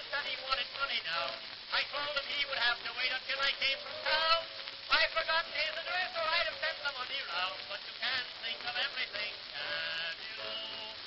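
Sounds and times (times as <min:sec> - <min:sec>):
person singing: 0:00.0 - 0:11.0.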